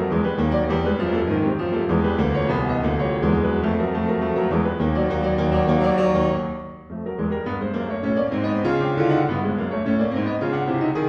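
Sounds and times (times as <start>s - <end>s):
solo grand piano: 0.0s - 11.0s.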